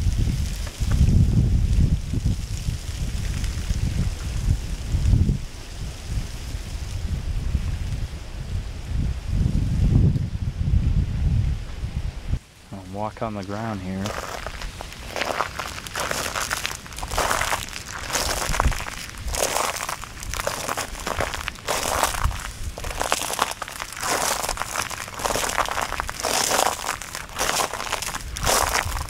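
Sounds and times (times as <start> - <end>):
footsteps crunching on icy grass: 12.8 - 29.0.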